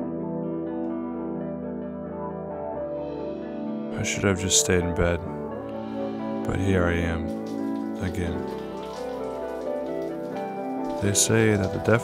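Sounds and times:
music of sustained notes: 0.0 - 12.0
shower running: 5.7 - 12.0.

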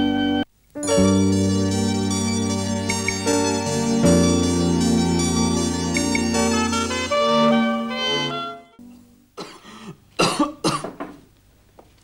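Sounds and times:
person coughing: 9.4 - 11.1.

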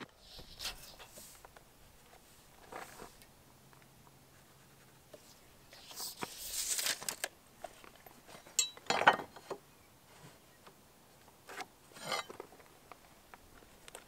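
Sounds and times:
metal clink: 8.6 - 9.2.

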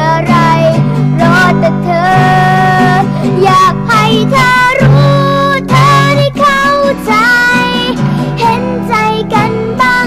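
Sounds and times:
acoustic guitar: 0.0 - 10.0
girl singing a pop ballad: 0.0 - 10.0.

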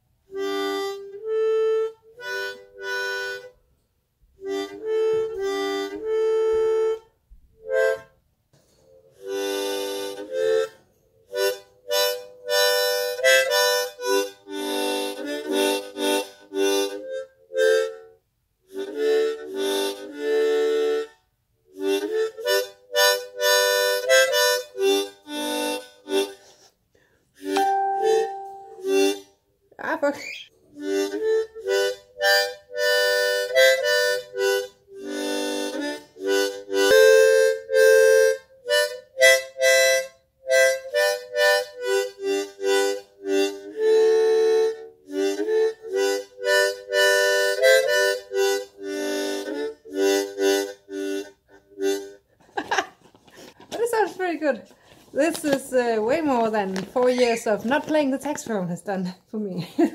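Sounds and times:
harmonica notes and chords: 0.0 - 3.8, 4.4 - 55.4.

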